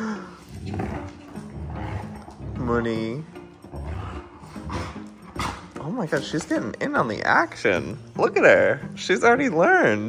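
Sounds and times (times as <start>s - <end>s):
dogs play growling: 0.0s - 6.5s.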